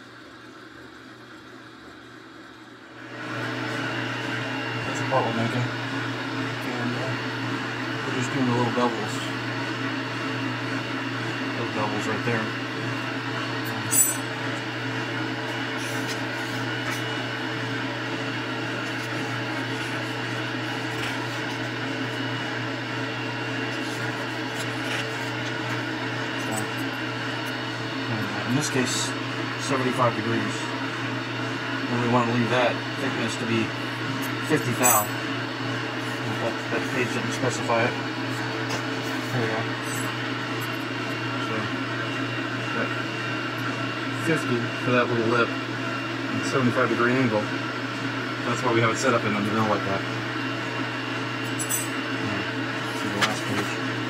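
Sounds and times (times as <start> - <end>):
machine humming: 0.0 - 54.0.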